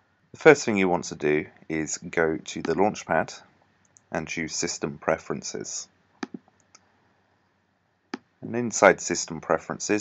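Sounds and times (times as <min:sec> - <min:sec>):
computer mouse clicks: 0:06.2 - 0:06.9.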